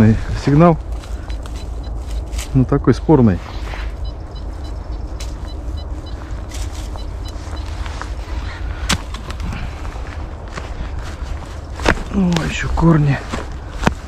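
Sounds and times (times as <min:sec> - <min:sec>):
footsteps in dry leaves: 0:00.0 - 0:14.0
rustles and twig snaps: 0:00.8 - 0:02.6, 0:03.5 - 0:12.7
wind rumble on microphone: 0:03.8 - 0:14.0.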